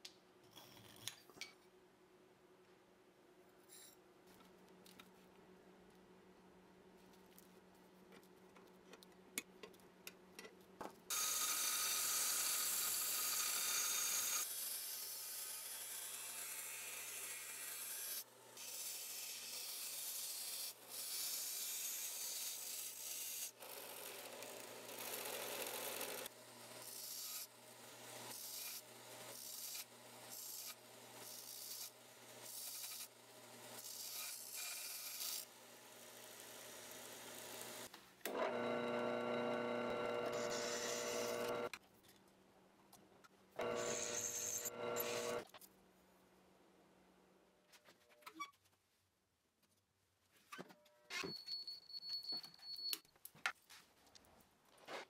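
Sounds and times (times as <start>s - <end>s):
belt grinder humming: 37.6s - 41.7s, 43.6s - 45.4s
drill press drilling steel: 38.3s - 41.7s, 43.6s - 45.4s.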